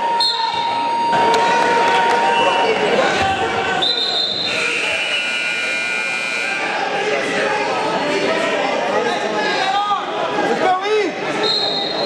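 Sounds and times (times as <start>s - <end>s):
referee's whistle blast: 0.0s - 2.8s, 3.5s - 6.8s, 11.4s - 12.0s
people shouting in a gymnasium: 0.0s - 12.0s.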